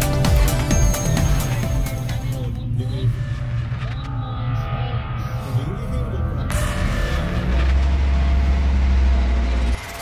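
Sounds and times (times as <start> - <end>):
car engine and road rumble: 1.5 - 10.0.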